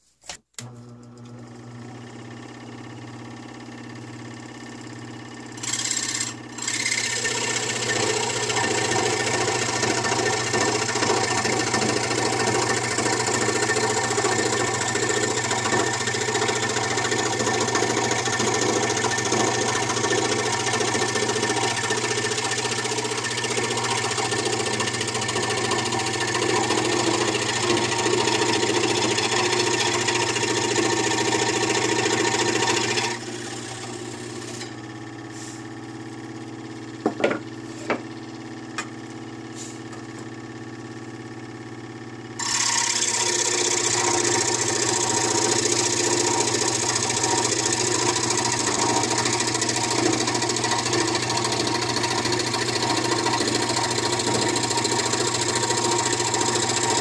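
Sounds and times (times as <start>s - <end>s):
scroll saw cutting wood: 5.5s - 34.8s, 42.4s - 57.0s.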